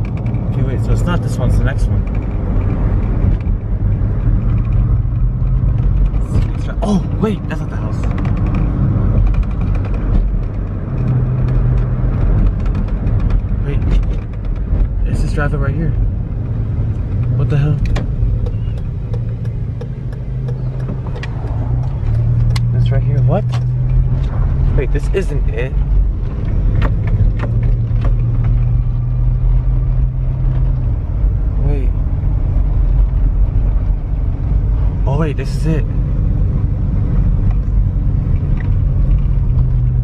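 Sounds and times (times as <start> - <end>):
car engine and road rumble: 0.0 - 40.0.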